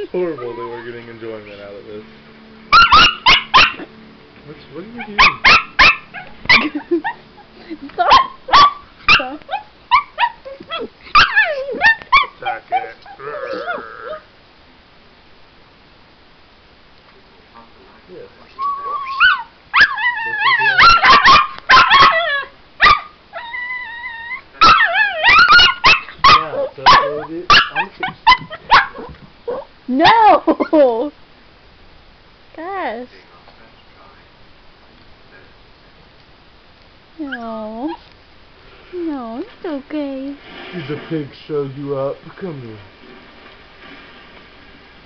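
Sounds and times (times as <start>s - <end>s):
puppy yapping: 0.0s - 1.1s, 2.7s - 3.9s, 5.0s - 7.2s, 8.0s - 14.3s, 18.5s - 30.8s.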